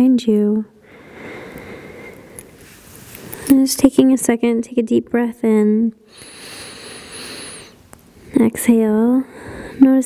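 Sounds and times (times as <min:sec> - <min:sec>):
woman inhaling deeply: 0:06.1 - 0:07.8, 0:09.3 - 0:09.8.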